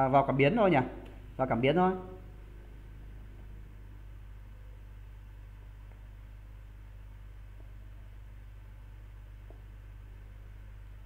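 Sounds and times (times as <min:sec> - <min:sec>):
low electrical hum with hiss: 0:00.0 - 0:11.0.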